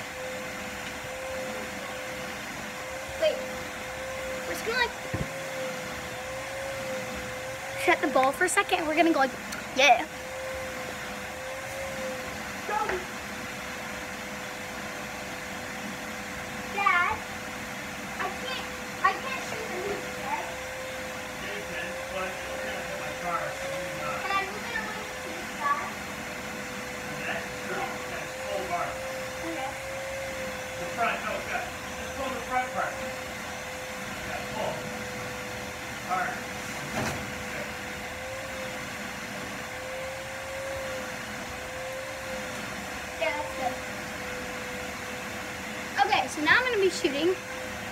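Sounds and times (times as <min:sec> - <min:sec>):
vacuum cleaner humming: 0:00.0 - 0:47.9.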